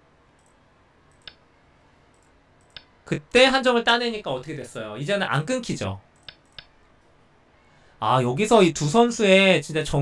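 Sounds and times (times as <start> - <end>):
faint computer mouse clicks: 0.4 - 1.4, 2.1 - 2.9, 6.2 - 6.7.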